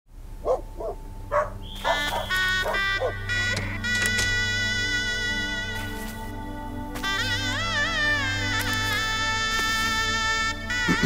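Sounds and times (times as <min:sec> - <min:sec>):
soft music with held tones: 0:00.3 - 0:11.0
dog barking: 0:00.4 - 0:03.2.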